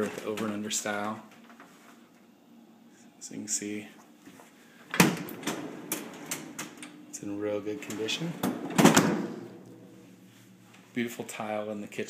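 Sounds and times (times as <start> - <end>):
drawer parts clicking and rattling: 4.9 - 7.0
refrigerator door thump: 8.4 - 9.5.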